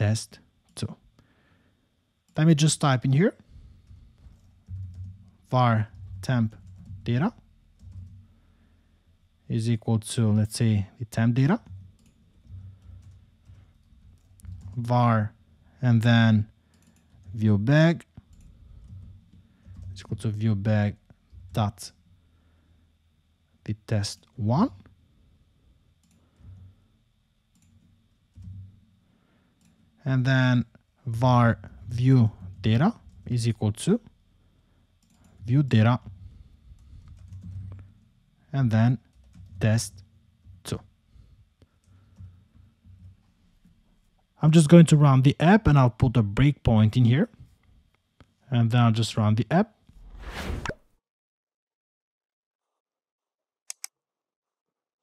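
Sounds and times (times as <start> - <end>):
whoosh and pop sound effect: 50.1 - 50.8.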